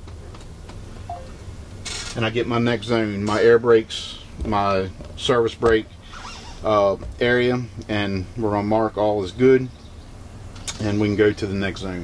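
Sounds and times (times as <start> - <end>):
short faint beep: 1.1 - 1.4.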